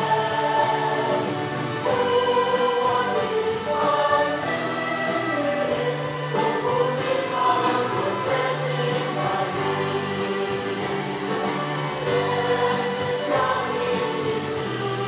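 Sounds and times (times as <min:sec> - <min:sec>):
choir singing held notes: 0:00.0 - 0:15.0.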